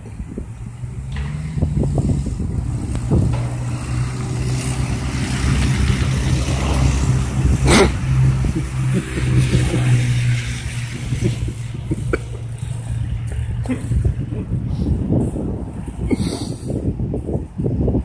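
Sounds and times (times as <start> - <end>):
vehicle engine running: 0.0 - 17.6.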